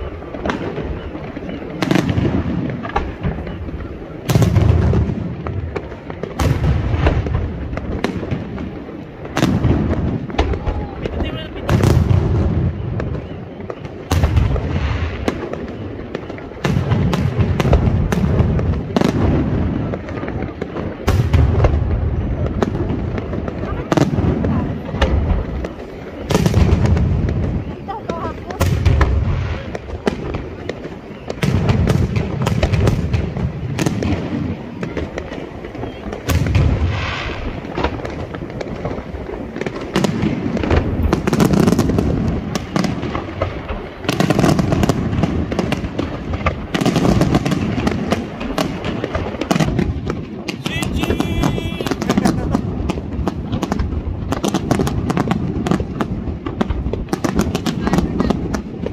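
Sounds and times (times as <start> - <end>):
deep fireworks booms: 0.0 - 58.9
fireworks shells bursting: 50.5 - 53.6.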